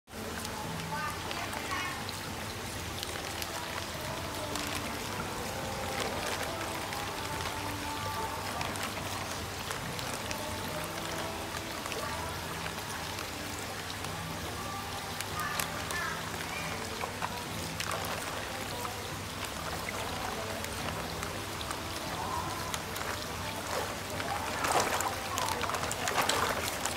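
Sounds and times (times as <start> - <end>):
background music: 0.1 - 26.9
water splashing and trickling: 0.1 - 26.9.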